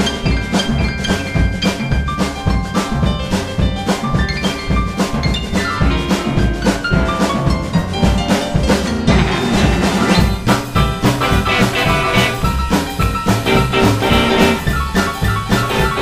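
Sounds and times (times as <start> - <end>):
boogie-woogie band playing: 0.0 - 16.0
grand piano: 0.0 - 16.0
steady drum beat: 0.0 - 16.0.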